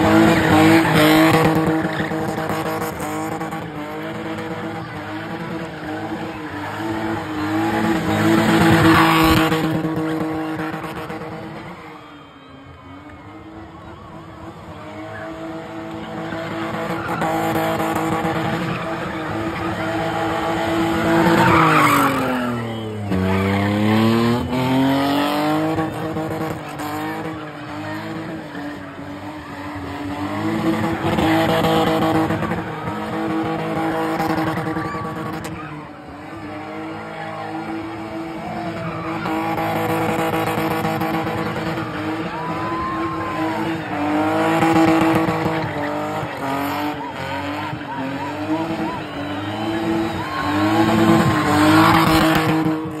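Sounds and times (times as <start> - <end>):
car engine revving high: 0.0 - 11.8, 13.1 - 53.0
tyres squealing: 16.1 - 24.8.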